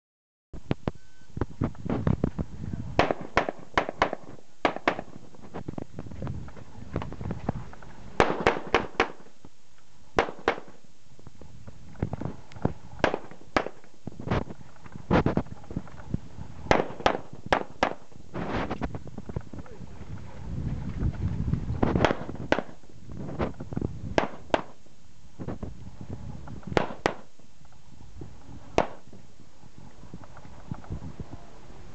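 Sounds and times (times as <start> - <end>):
pistol gunshots: 3.0 - 5.2, 8.2 - 9.3, 10.2 - 10.8, 13.0 - 13.9, 16.7 - 18.1, 22.0 - 22.8, 24.2 - 24.8, 26.7 - 27.3, 28.8 - 29.1.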